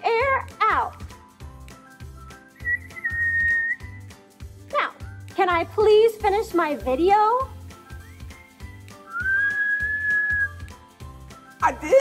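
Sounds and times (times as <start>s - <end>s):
background music: 0.0s - 12.0s
person whistling: 2.2s - 4.1s, 8.0s - 10.7s.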